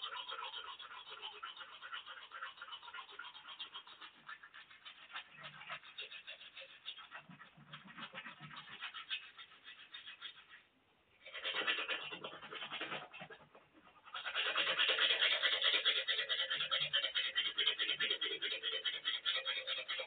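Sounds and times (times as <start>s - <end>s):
toothbrush scrubbing teeth: 0.0s - 20.0s.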